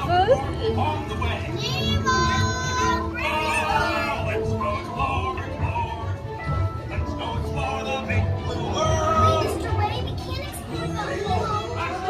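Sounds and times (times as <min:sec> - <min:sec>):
excited children's voices: 0:01.3 - 0:05.4, 0:08.5 - 0:12.0.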